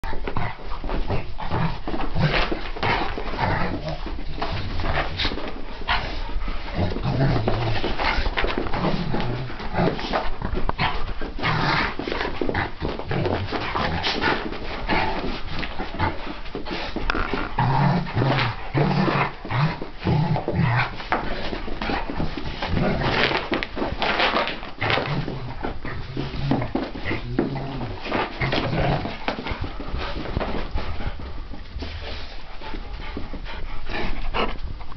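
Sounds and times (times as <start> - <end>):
dogs panting: 0.0 - 34.9
dogs scuffling: 0.0 - 34.9
low dog growls: 24.9 - 29.3.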